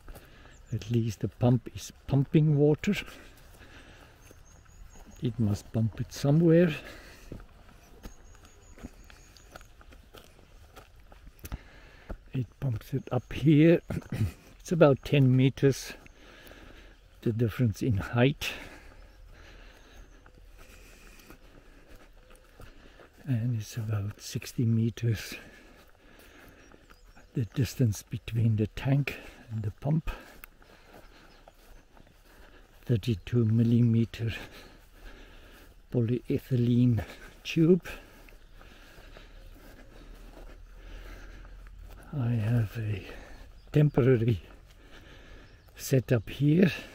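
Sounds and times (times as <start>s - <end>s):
footsteps through grass: 0.0s - 46.9s.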